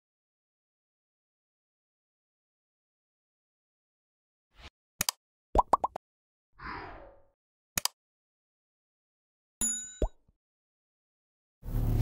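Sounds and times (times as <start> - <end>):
quick pops rising in pitch: 5.6 - 6.0.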